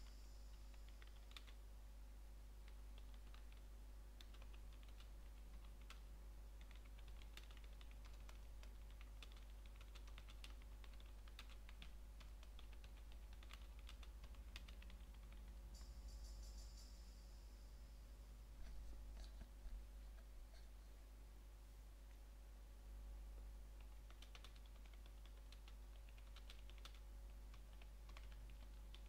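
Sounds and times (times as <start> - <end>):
computer keyboard typing: 0.5 - 1.6, 2.6 - 16.9, 23.8 - 29.0.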